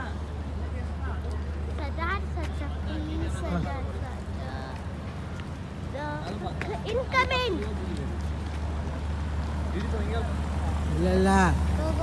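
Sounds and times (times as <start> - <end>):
voices: 0.0 - 12.0.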